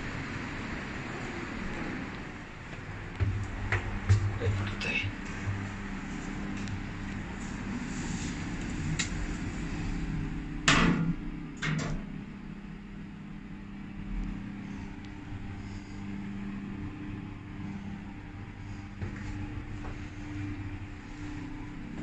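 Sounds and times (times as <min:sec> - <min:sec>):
lift low hum: 0:00.0 - 0:22.0.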